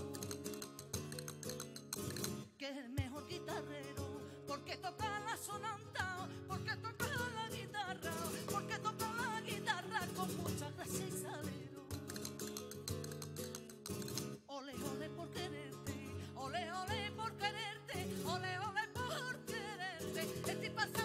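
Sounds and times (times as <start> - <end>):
flamenco guitar strumming chords: 0.0 - 21.0
woman singing flamenco: 0.0 - 21.0.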